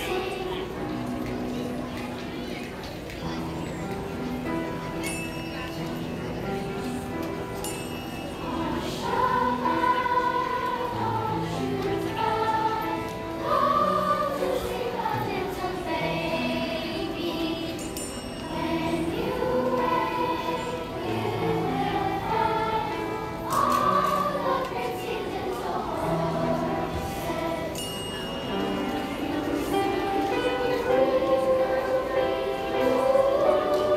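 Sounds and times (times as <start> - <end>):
children's choir singing: 0.0 - 33.9.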